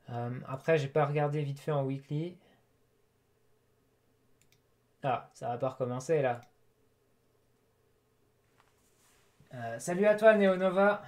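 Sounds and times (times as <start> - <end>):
computer mouse clicks: 4.4 - 4.7.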